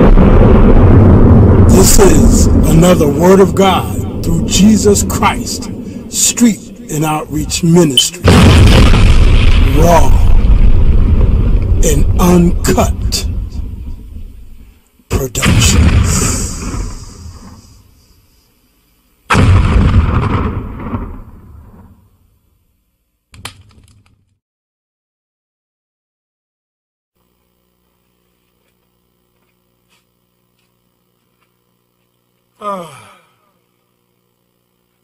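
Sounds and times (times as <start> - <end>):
explosion booms rumbling: 0.0 - 6.8, 8.2 - 14.3, 15.4 - 17.8, 19.3 - 22.0
faint electrical hum: 0.0 - 23.8, 27.2 - 35.0
man's voice trailing off: 1.7 - 8.3, 9.7 - 10.4, 32.6 - 33.5.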